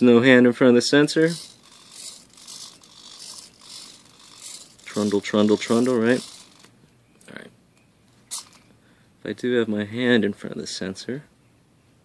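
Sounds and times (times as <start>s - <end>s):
servo whir: 0.8s - 6.8s.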